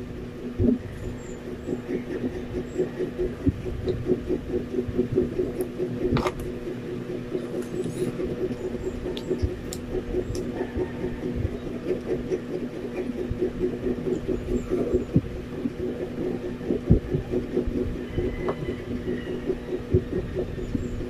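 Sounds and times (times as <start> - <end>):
low throbbing hum: 0.0 - 21.0.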